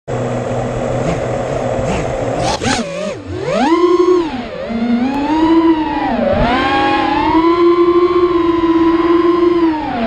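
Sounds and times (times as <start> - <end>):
drone motors humming at idle: 0.1 - 10.0.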